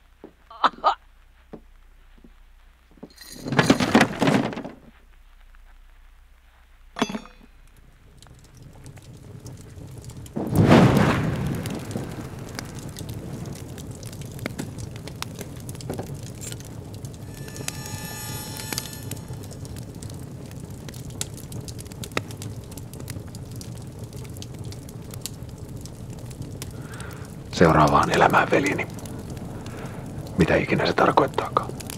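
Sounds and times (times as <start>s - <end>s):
fire crackling: 0.0s - 31.9s
low rumble: 4.9s - 30.4s
brief ringing tone: 17.2s - 19.9s.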